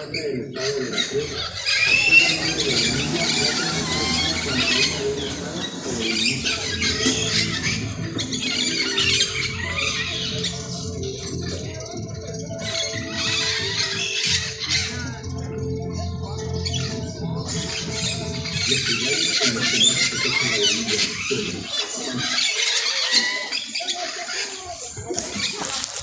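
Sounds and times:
background music: 0.0s - 21.8s
parakeets screeching and chattering: 0.0s - 26.0s.

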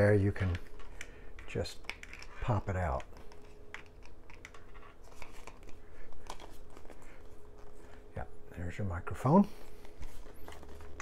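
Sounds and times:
plastic headset clicks and rustles: 0.3s - 7.8s.

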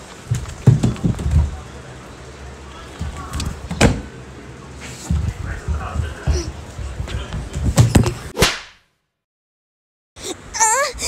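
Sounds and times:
sharp crack: 8.4s - 8.9s.

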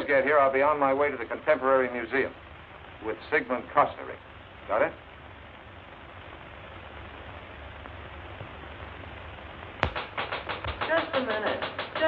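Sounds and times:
soundtrack hiss: 0.0s - 12.0s
rapid knocking on glass door: 9.8s - 12.0s.

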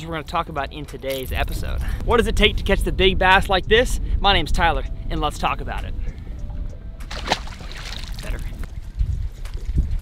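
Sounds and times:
wind buffeting microphone: 0.9s - 10.0s.

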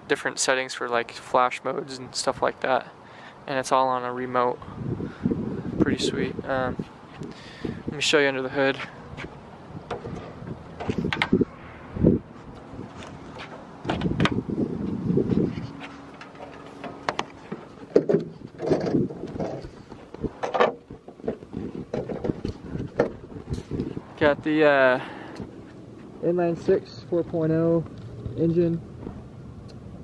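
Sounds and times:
hood latch clicks and knocks: 9.8s - 11.4s, 16.2s - 19.7s, 20.4s - 23.7s.

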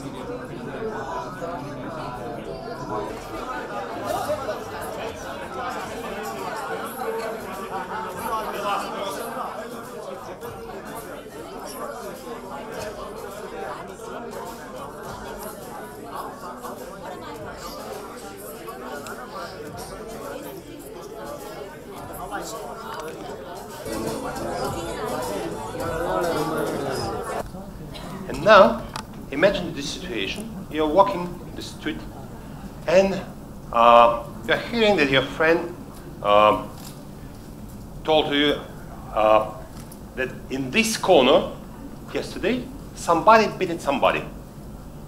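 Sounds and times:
overlapping indistinct chatter: 0.0s - 45.0s.

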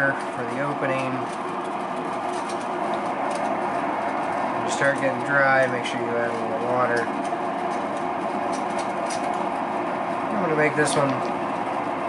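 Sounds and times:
potter's wheel running: 0.0s - 12.0s.

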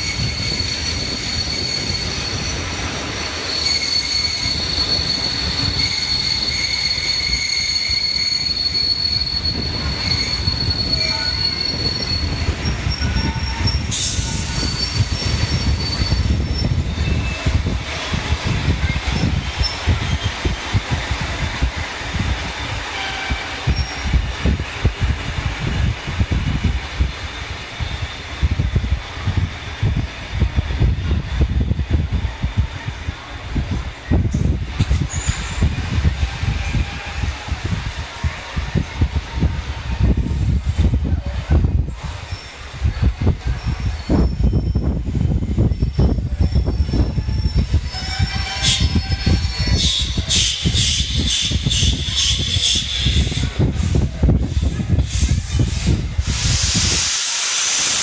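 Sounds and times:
train wheel squeal: 0.0s - 31.2s, 32.1s - 58.0s
low train rumble: 0.0s - 58.0s.

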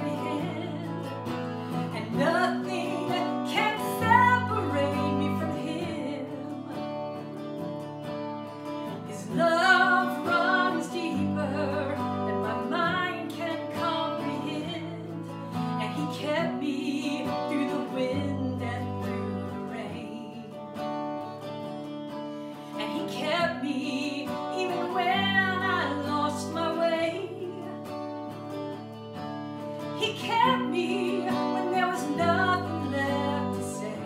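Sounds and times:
woman singing gospel song: 0.0s - 1.1s, 1.8s - 6.8s, 9.1s - 15.2s, 15.8s - 20.6s, 22.8s - 27.8s, 30.0s - 34.0s.

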